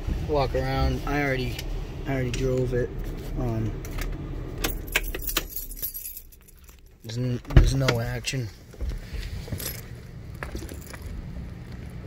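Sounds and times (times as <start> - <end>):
keys jingling: 4.6 - 7.2, 9.5 - 12.0.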